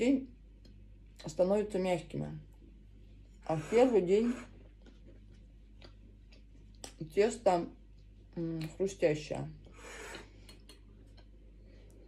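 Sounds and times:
chewing soft pastry: 4.4 - 7.0, 9.5 - 12.0.

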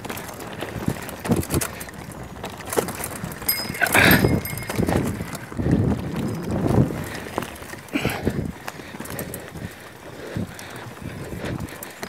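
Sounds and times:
wheels knocking over rocks: 0.0 - 9.2
bike rattling: 0.0 - 12.0.

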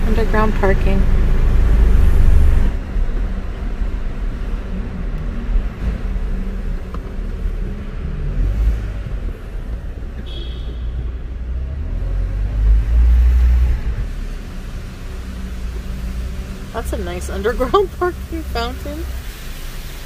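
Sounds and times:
car engine and tyre rumble: 0.0 - 20.0.

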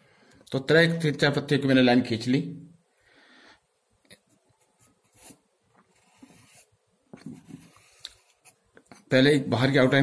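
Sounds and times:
pencil scratching on paper: 4.6 - 8.6.

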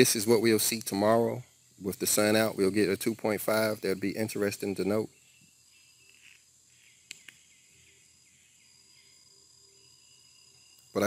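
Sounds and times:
faint high chirping: 0.2 - 11.0.

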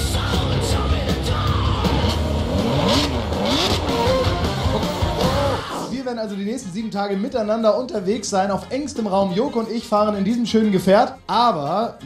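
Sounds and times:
sports car engines revving: 0.0 - 5.9
loud rock music: 0.0 - 6.8.

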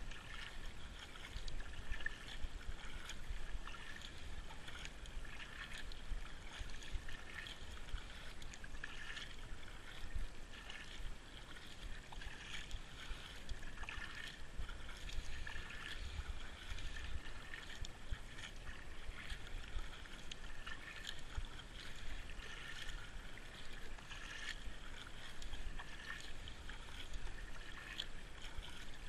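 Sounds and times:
paddle strokes in water: 0.0 - 29.0
water splashing and dripping: 0.0 - 29.0.

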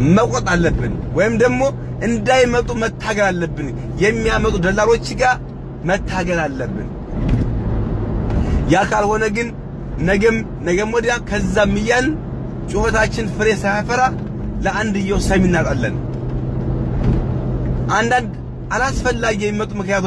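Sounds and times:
car driving hum: 0.0 - 20.0
person talking: 8.7 - 16.0.

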